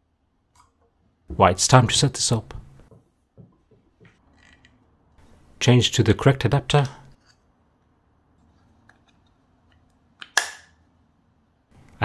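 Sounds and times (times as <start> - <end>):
plastic click and snap: 10.2 - 10.8.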